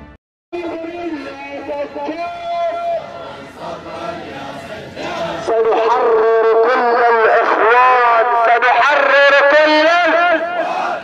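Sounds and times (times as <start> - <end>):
person chanting loudly: 0.6 - 11.0.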